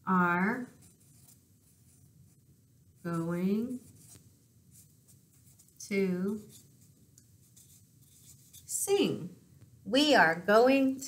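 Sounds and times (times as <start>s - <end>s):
marker scratching on paper: 0.6s - 2.4s, 3.1s - 8.8s.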